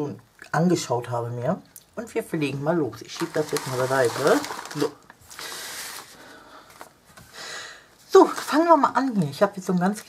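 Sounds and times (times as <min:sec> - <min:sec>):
plastic packets rustling and sliding: 0:02.9 - 0:07.2, 0:07.9 - 0:09.4.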